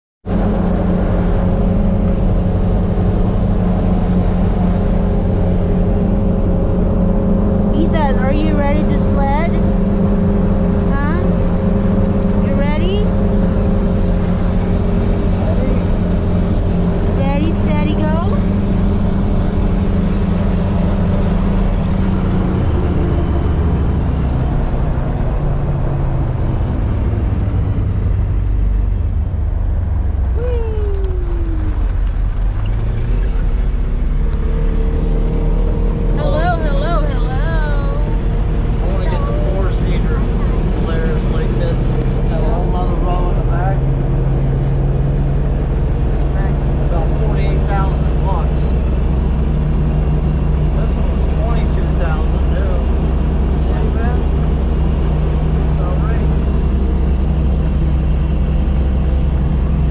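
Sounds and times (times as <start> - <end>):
vehicle engine droning: 0.2 - 59.9.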